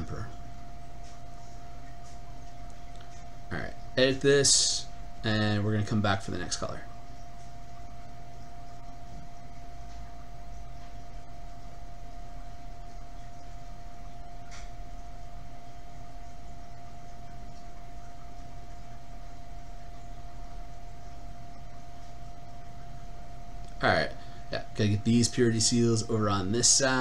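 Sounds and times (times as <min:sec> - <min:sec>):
low hum: 0:00.0 - 0:27.0.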